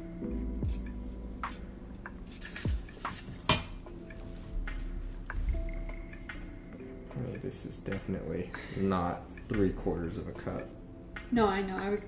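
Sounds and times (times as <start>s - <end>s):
metal spoons clinking on glass and metal: 2.4s - 4.5s.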